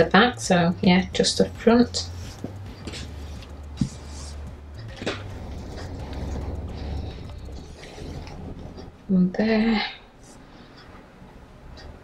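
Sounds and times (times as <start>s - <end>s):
low steady hum: 0.0s - 12.0s
fabric rustling: 2.0s - 9.1s.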